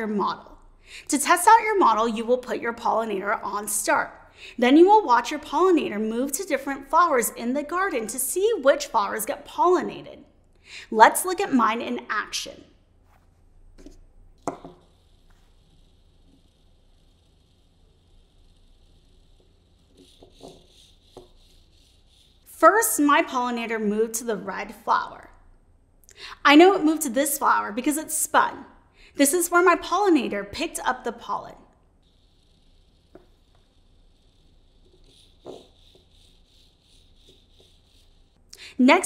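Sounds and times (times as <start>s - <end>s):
robot wheel motors whirring: 14.3s - 22.5s, 32.0s - 38.4s.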